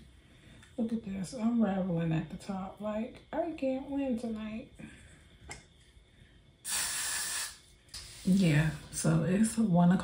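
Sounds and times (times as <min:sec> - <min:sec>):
aerosol hairspray hiss: 0:06.6 - 0:08.8.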